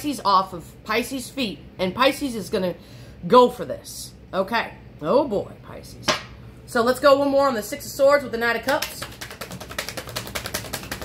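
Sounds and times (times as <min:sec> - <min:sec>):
cards being shuffled: 0:08.9 - 0:11.0.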